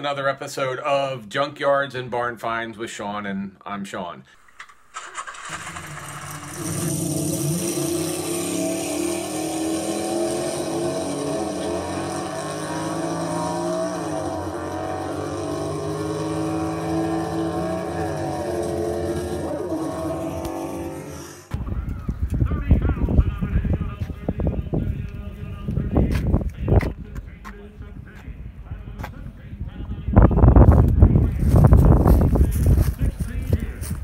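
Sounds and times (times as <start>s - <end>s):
car engine revving: 4.4s - 21.5s.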